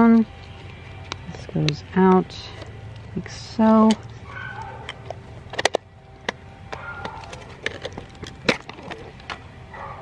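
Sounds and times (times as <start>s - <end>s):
camera plastic and metal clicks: 3.8s - 9.4s.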